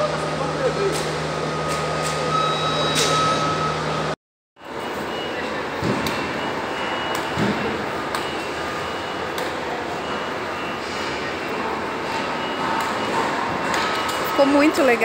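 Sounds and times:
exhibition hall background noise: 0:00.0 - 0:15.0
faint steady high tone: 0:02.3 - 0:03.9.

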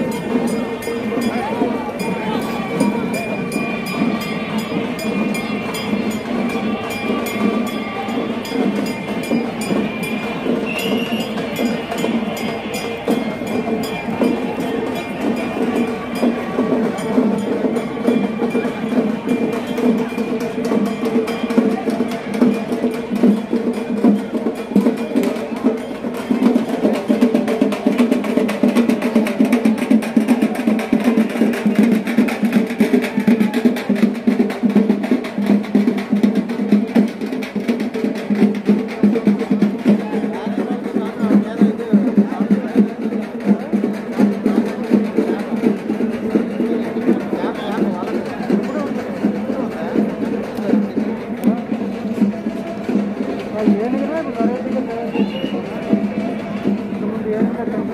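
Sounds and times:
fast dense drumming: 0:00.0 - 0:57.9.

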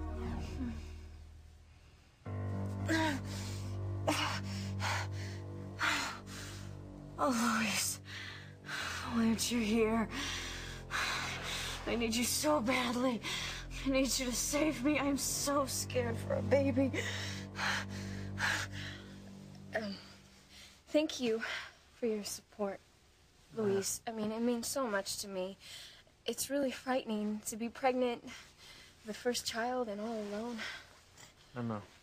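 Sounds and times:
sustained low music chord: 0:00.0 - 0:20.7
woman saying um: 0:23.6 - 0:24.2.

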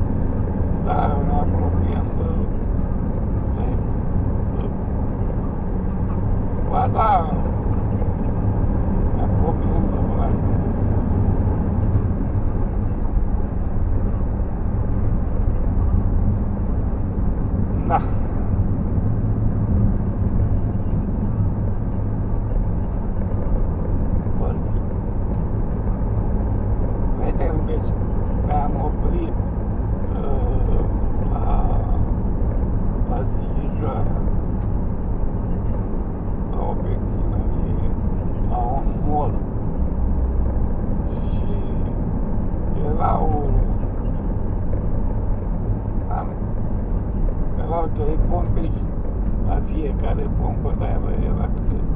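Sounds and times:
vehicle engine and road rumble: 0:00.0 - 0:51.9.

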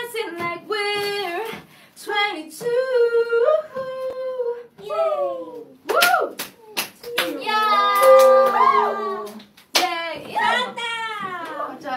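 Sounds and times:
hand claps: 0:05.9 - 0:10.4.

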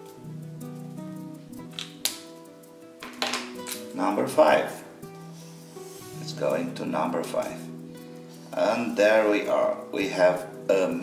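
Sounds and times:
soft keyboard music: 0:00.0 - 0:11.0.

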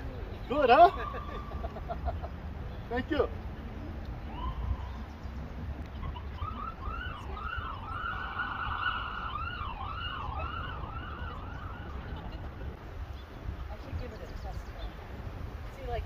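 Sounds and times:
emergency vehicle siren: 0:00.8 - 0:01.7, 0:04.2 - 0:05.0, 0:06.0 - 0:12.6.

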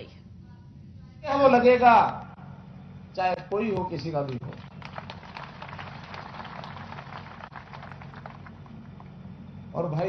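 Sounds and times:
low sound system hum: 0:00.0 - 0:10.0
crowd clapping: 0:03.9 - 0:09.3.

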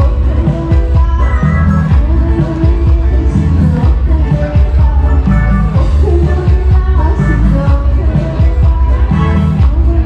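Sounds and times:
live band with keyboard and guitar: 0:00.0 - 0:10.0
woman singing into microphone: 0:00.0 - 0:10.0.

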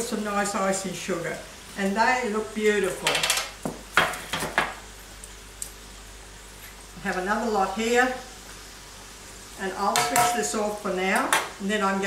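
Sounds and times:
oil sizzling in a frypan: 0:00.0 - 0:12.0.

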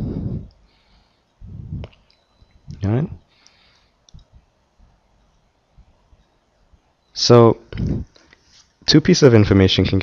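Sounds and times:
faint clicks: 0:03.4 - 0:04.4.

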